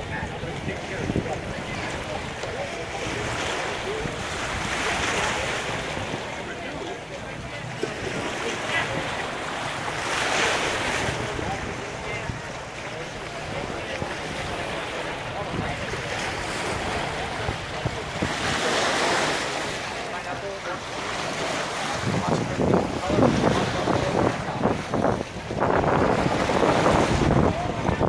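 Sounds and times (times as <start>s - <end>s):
wind buffeting microphone: 0.0s - 3.0s, 21.8s - 28.0s
waves splashing against rocks: 0.0s - 28.0s.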